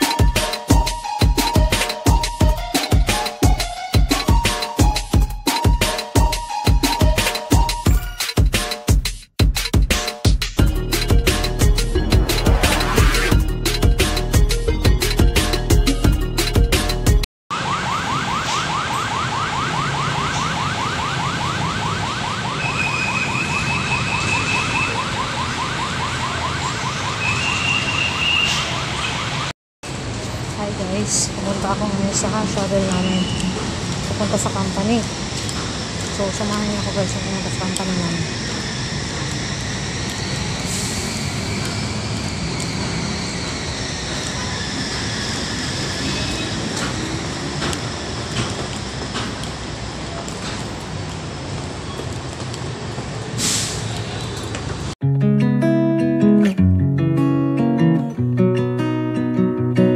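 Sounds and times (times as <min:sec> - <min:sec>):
road traffic: 0:10.6 - 0:55.0
electronic siren warbling: 0:11.0 - 0:13.6, 0:17.5 - 0:29.5.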